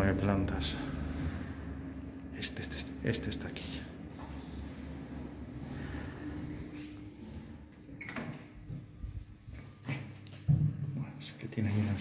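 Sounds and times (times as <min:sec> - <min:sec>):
elevator door mechanism hum: 0:00.0 - 0:09.4.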